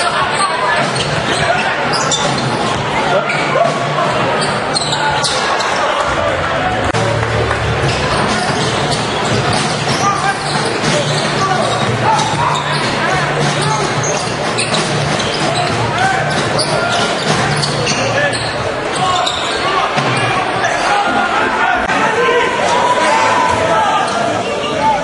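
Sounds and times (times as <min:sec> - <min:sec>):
crowd noise and voices: 0:00.0 - 0:25.0.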